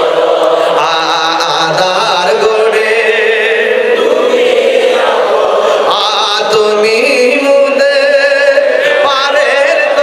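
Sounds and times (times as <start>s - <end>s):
man chanting a devotional song: 0.8s - 3.9s, 5.9s - 10.0s.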